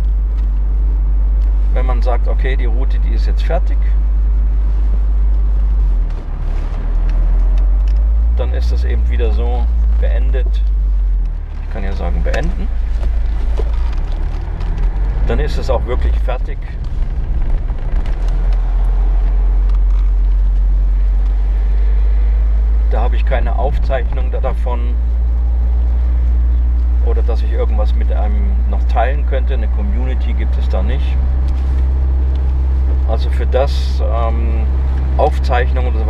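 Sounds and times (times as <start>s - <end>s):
wind and road noise in car: 0.0s - 36.0s.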